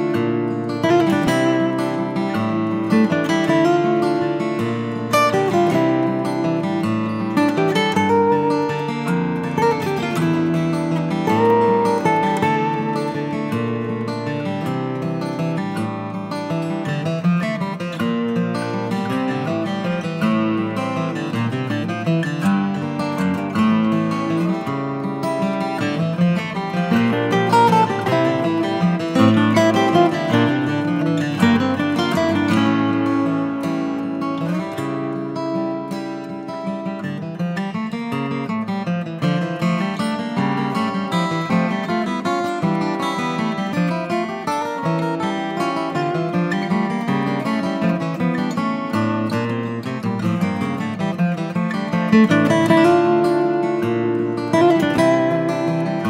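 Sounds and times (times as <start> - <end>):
acoustic guitar background music: 0.0 - 56.0.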